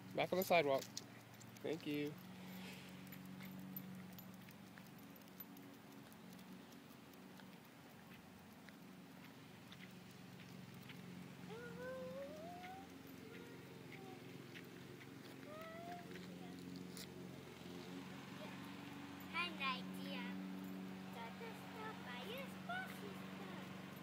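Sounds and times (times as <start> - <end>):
distant lawn mower engine: 1.3 - 24.0.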